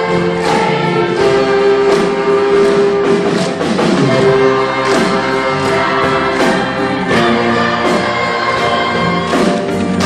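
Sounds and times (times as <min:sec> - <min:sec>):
crowd singing a chorus: 0:00.0 - 0:03.3, 0:03.9 - 0:10.0
live band music: 0:00.0 - 0:10.0.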